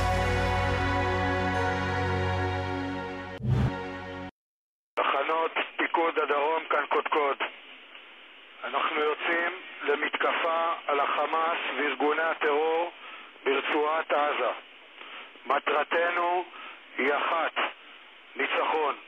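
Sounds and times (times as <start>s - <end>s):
man speaking over radio: 5.0s - 7.6s, 8.6s - 14.6s, 15.4s - 17.8s, 18.4s - 19.0s.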